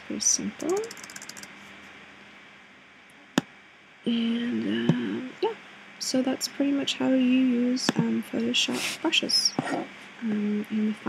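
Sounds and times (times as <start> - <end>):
room hiss: 0.0 - 11.0
computer click: 0.6 - 1.5.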